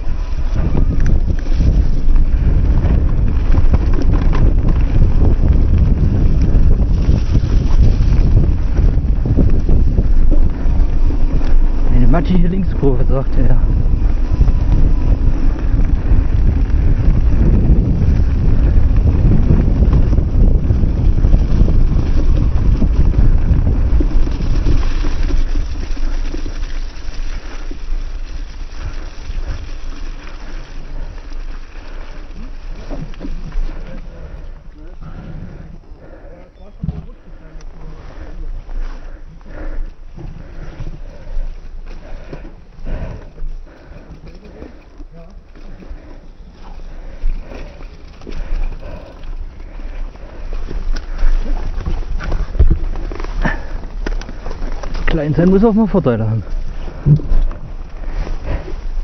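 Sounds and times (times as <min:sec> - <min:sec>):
bike knocking and rattling: 0:00.0 - 0:36.0, 0:36.7 - 0:59.0
wind rumbling on microphone: 0:00.0 - 0:59.0.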